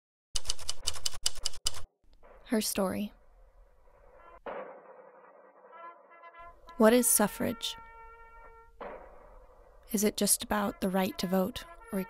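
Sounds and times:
typewriter keys striking: 0.4 - 1.8.

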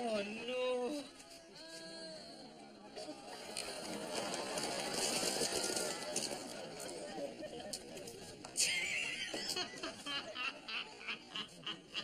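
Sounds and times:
studio audience laughing: 8.6 - 12.0.

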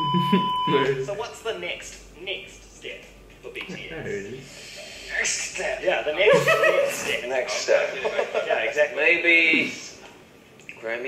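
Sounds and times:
person talking: 0.1 - 1.2.

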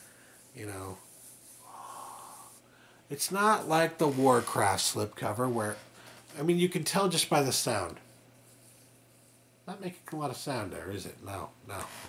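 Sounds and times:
soft breath through nose: 1.4 - 3.0.

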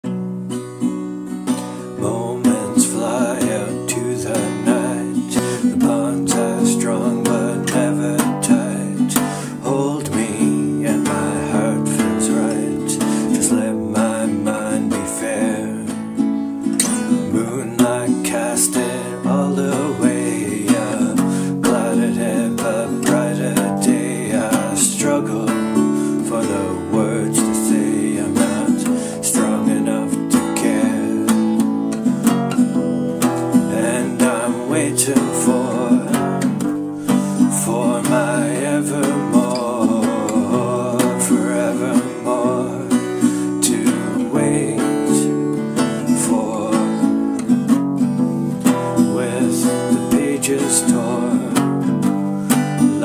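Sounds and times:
strummed acoustic guitar: 0.0 - 53.0
man singing: 1.5 - 53.0.

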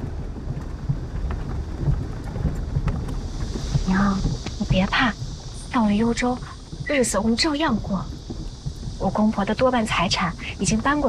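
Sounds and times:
low steady rumble: 0.0 - 11.0
faint hiss: 0.1 - 11.0.

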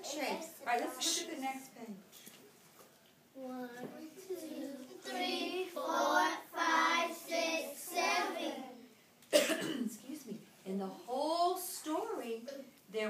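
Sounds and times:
children chanting: 4.2 - 8.9
sharp cough: 9.3 - 10.0.

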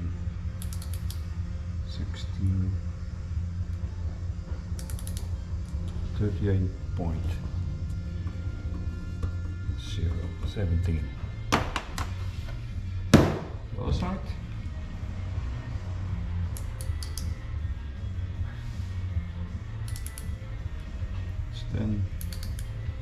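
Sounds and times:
background music: 0.0 - 23.0
loud knock on workbench: 11.5 - 12.0, 13.1 - 13.6.

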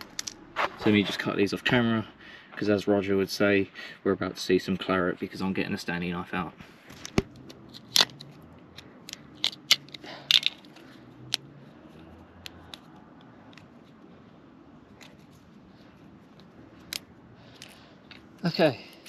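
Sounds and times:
knife cutting and snapping tabs: 7.0 - 11.4.

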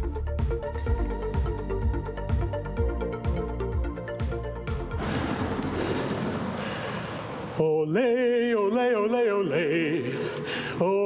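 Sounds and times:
bicycle tyre noise on concrete: 5.0 - 7.6.

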